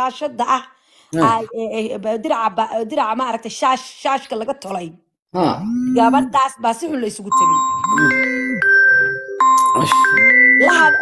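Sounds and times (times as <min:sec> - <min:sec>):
person's voice: 0:01.1 - 0:03.3, 0:05.4 - 0:08.6, 0:09.6 - 0:10.0, 0:10.6 - 0:11.0
electronic chime tones: 0:07.2 - 0:11.0.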